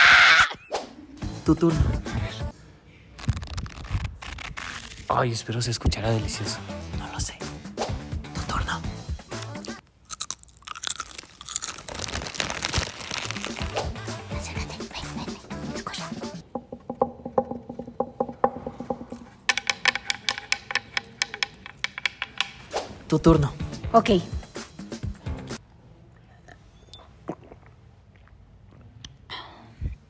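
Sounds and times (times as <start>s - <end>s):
dry leaves crackling: 10.8s - 14.1s.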